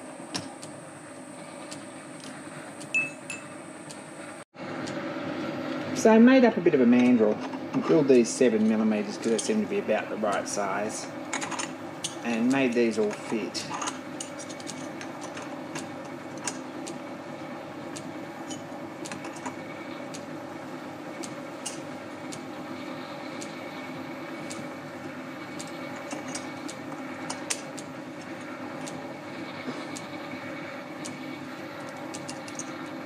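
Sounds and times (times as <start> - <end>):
steady machine hum: 0.0 - 33.0.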